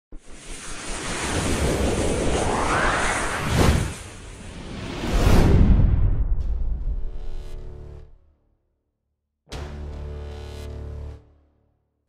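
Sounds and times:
rushing whoosh: 0.2 - 6.3.

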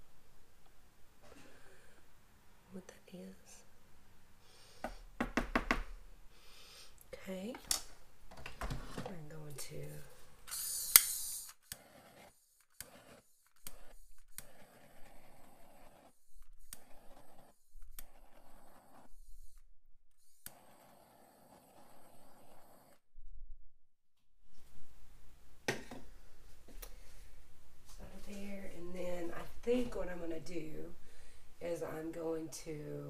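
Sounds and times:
short hiss with sharp click: 10.5 - 11.6.

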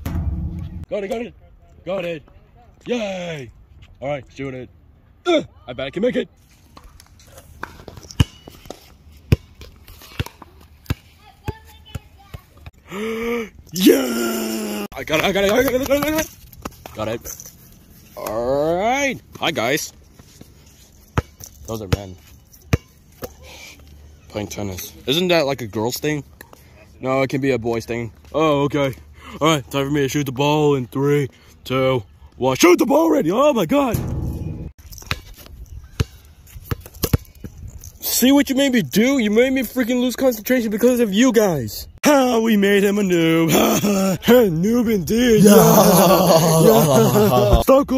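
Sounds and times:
short low rumble: 0.0 - 0.9, 34.0 - 34.7.

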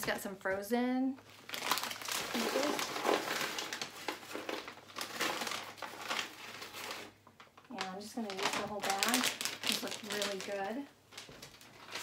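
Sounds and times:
plastic bag crinkling: 1.2 - 12.0.

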